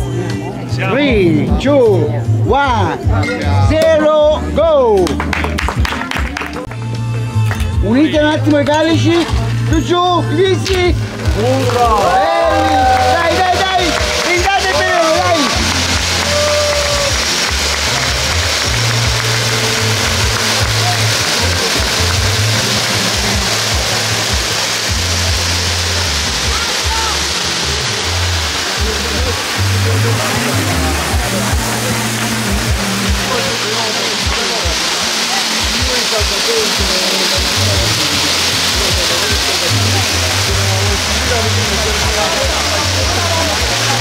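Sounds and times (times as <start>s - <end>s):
music with bass line: 0.0s - 44.0s
spark fountains hissing: 4.8s - 44.0s.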